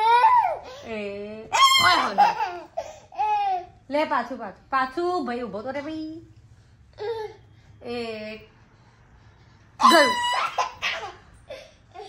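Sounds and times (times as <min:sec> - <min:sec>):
toddler squealing laugh: 0:01.6 - 0:03.6, 0:09.8 - 0:11.6.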